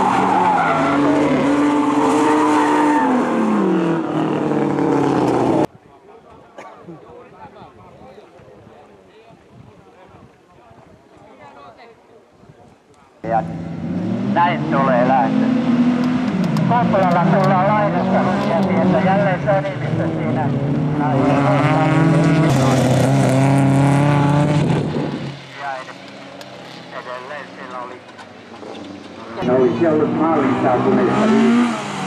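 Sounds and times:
race car engines revving: 0.0 - 5.7, 13.2 - 32.0.

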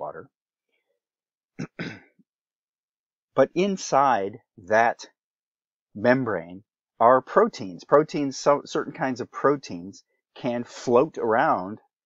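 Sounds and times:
man clearing his throat: 1.6 - 2.2.

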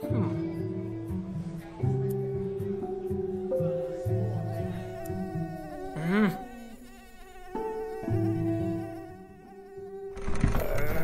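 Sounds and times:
soft background music: 0.0 - 11.0
cartoon mosquito buzzing whine: 3.8 - 11.0.

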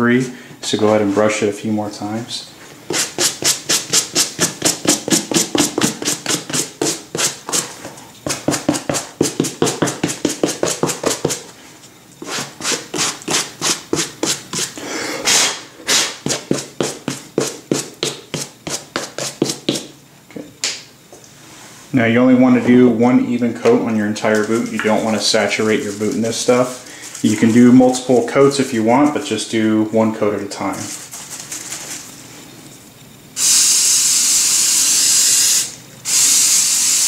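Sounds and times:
brush scrubbing suede leather: 2.9 - 11.5.

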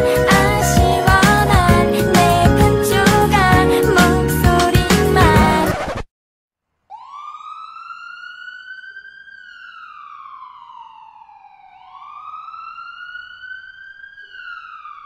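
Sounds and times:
ambulance siren wailing: 0.0 - 3.4, 6.9 - 15.0.

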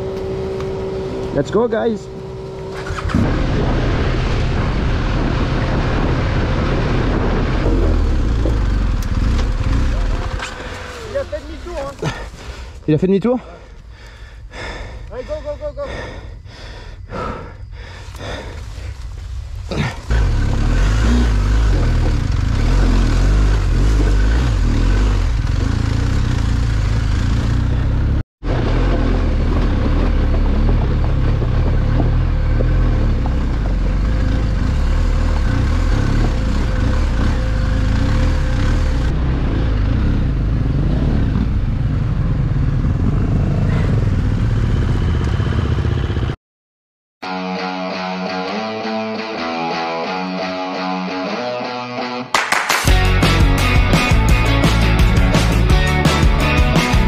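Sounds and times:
motorcycle engine rumbling: 0.0 - 46.4.

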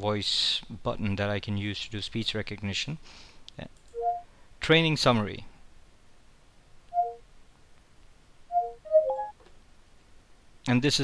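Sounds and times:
falling two-note electronic tone: 4.0 - 4.2, 7.0 - 7.2, 8.5 - 9.4.

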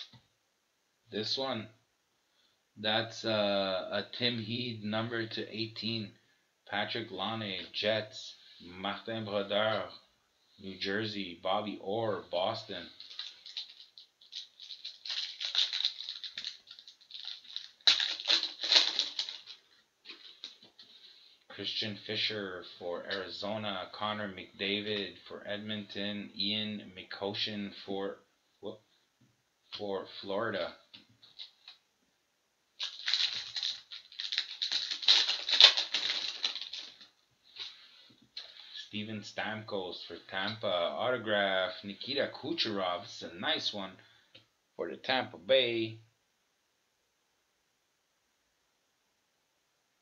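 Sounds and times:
foil wrapper crinkling and tearing: 13.0 - 20.6, 32.8 - 37.1.

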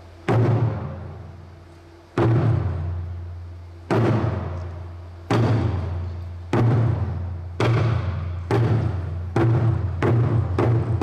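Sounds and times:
large drum booming: 0.2 - 1.3, 2.2 - 3.1, 3.9 - 4.6, 5.2 - 11.0.

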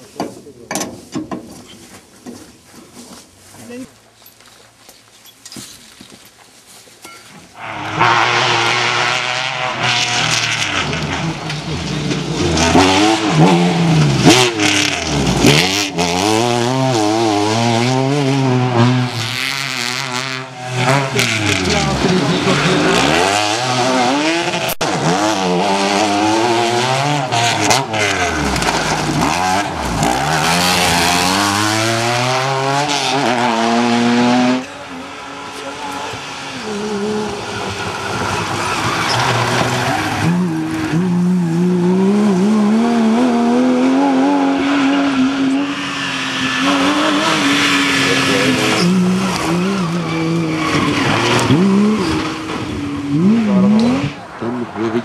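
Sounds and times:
rally car engine climbing: 7.5 - 55.0
rally car engines revving: 7.5 - 55.0.

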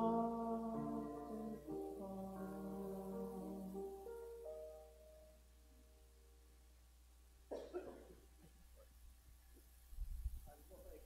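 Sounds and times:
person coughing: 7.5 - 8.3.

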